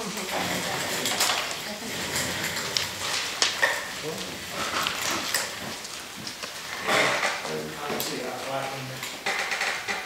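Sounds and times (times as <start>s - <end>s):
papers shuffling: 0.0s - 10.0s.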